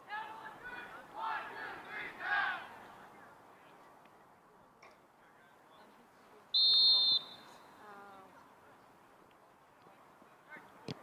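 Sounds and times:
referee's whistle blast: 6.6s - 7.6s.

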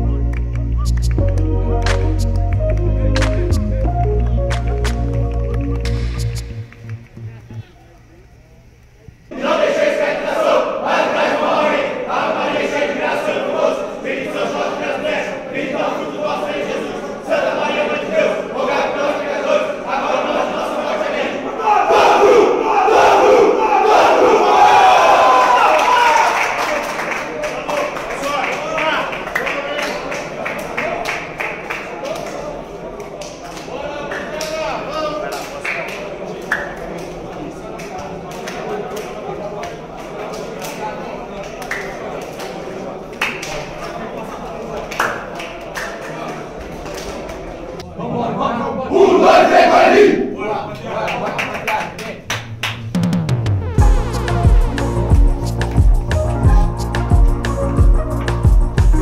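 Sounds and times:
scattered voices: 6.0s - 25.0s, 27.6s - 52.3s
group of men shouting: 9.3s - 26.4s.

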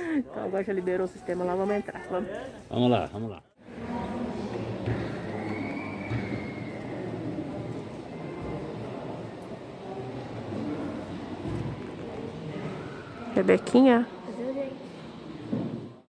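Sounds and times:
large hall background noise: 0.0s - 16.0s
faint indistinct voices: 3.6s - 16.0s.

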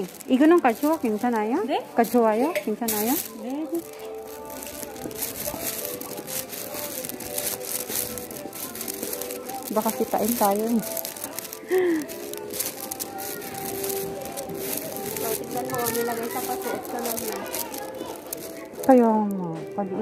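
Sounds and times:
light rustling: 0.0s - 19.4s
person speaking: 0.0s - 19.6s
store background music: 0.0s - 20.0s.

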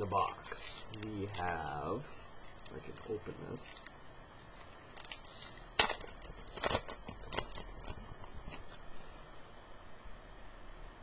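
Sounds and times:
wrapper crinkling: 0.0s - 8.9s
wrapper tearing open: 0.1s - 1.7s, 3.7s - 8.8s.

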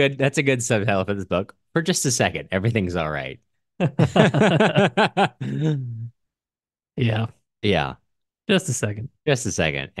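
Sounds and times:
man laughing: 3.8s - 6.2s.

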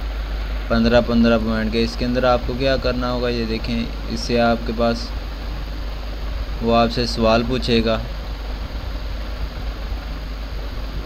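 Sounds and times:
background hiss: 0.0s - 11.0s
steady low hum: 0.0s - 11.0s.

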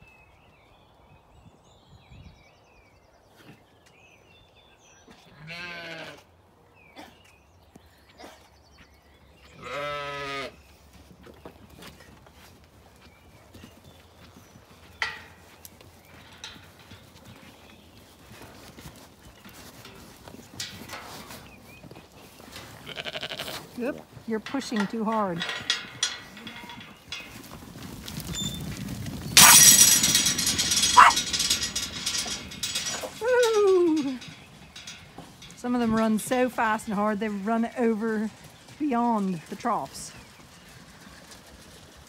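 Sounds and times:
sheep bleating: 5.4s - 6.2s, 9.6s - 10.6s, 22.8s - 23.6s.

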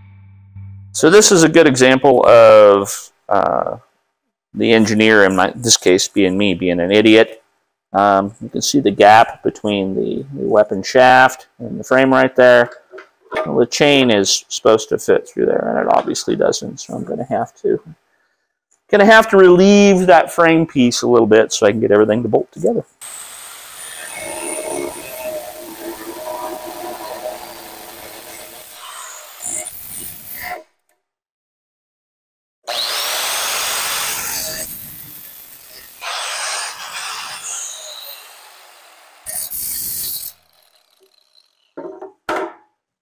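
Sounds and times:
angle grinder grinding metal: 23.0s - 30.6s, 32.7s - 41.8s.

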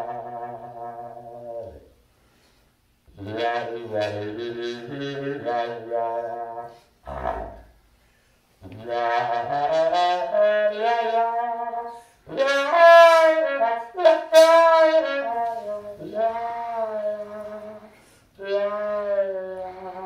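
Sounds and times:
trombone playing held notes: 0.0s - 1.9s, 3.1s - 7.7s, 8.6s - 20.0s.

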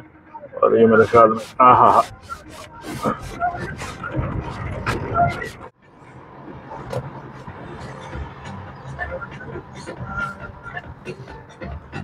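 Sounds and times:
road noise inside moving car: 0.0s - 12.0s
traffic hum: 0.0s - 12.0s
person speaking: 0.6s - 5.7s.

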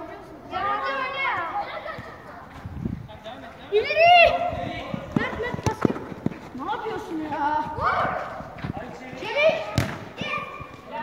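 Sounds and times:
ball being kicked: 5.0s - 6.6s, 8.6s - 11.0s.

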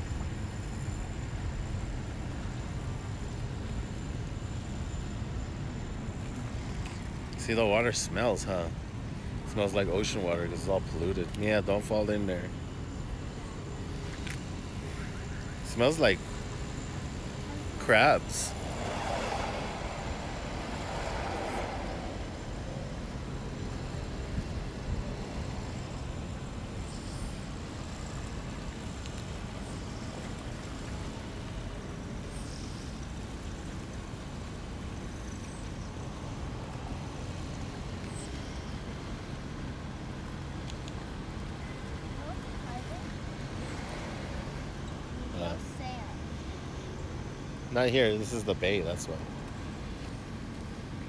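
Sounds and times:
distant road traffic rumble: 0.0s - 51.0s
faint engine hum: 0.0s - 51.0s
voices: 9.5s - 12.6s, 14.7s - 16.5s, 17.2s - 23.7s, 41.8s - 44.1s, 45.0s - 46.4s, 47.7s - 49.3s.

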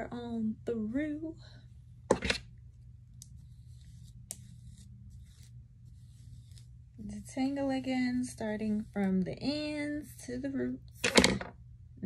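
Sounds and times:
brush rustling through hair: 3.2s - 9.7s.

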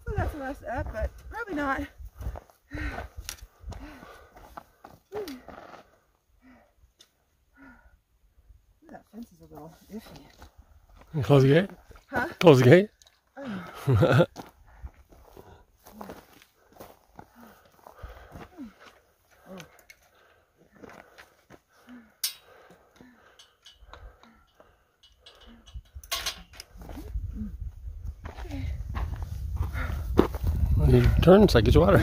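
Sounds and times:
footsteps on dirt trail: 0.0s - 6.2s, 13.6s - 21.9s, 26.7s - 31.2s
sharp metallic clank: 25.4s - 26.6s
wind rumble on microphone: 25.5s - 32.0s.

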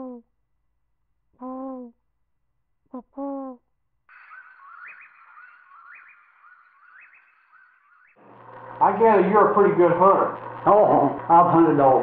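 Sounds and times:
low hoot-like animal call: 1.4s - 2.0s, 2.9s - 7.9s
faint raspy chirping chorus: 4.1s - 8.9s
low steady hum: 8.2s - 12.0s.

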